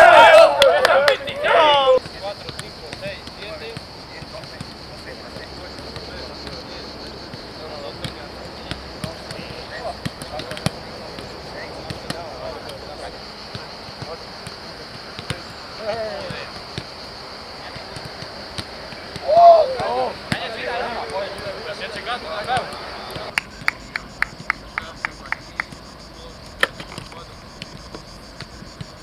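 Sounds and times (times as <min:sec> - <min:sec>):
footballs being kicked: 0:00.7 - 0:06.6, 0:07.3 - 0:12.8, 0:13.5 - 0:17.0, 0:17.6 - 0:21.6, 0:22.3 - 0:24.8.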